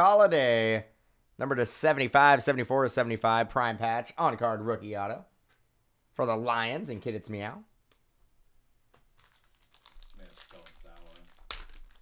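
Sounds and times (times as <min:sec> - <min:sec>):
foil wrapper crinkling: 0:09.1 - 0:12.0
foil wrapper ripping: 0:09.2 - 0:12.0.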